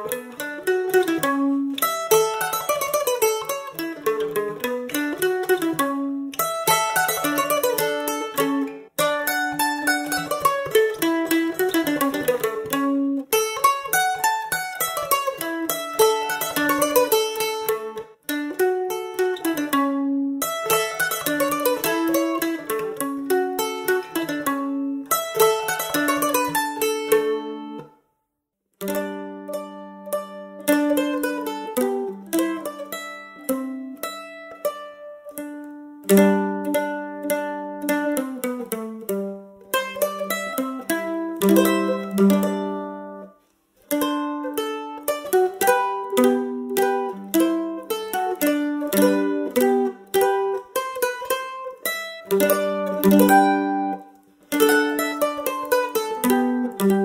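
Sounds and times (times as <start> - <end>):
mandolin folk melody: 0.0 - 28.1, 28.8 - 57.0.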